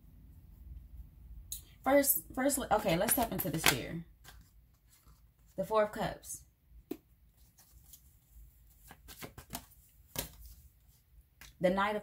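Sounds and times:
cards flicking and sliding: 8.8s - 10.6s.

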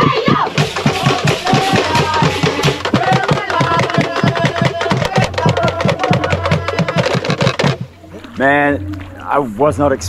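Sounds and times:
fast wooden clacks and drum beats: 0.0s - 8.0s.

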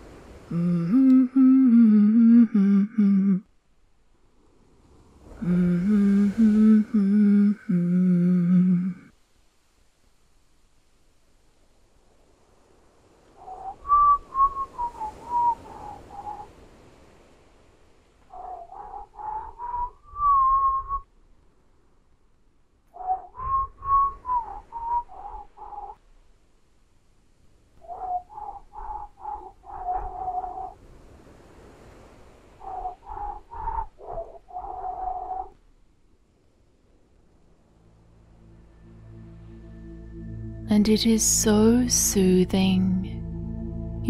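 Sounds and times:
whistling whale song: 13.4s - 16.6s, 18.3s - 21.1s, 23.0s - 26.0s, 27.8s - 30.8s, 32.6s - 35.6s.

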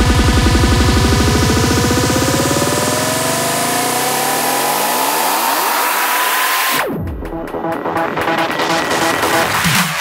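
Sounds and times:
psytrance synth build-up: 0.0s - 10.0s.

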